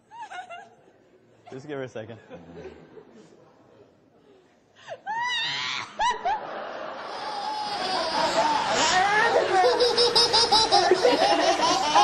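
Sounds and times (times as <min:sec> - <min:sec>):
babies giggling: 0:06.9 - 0:12.0.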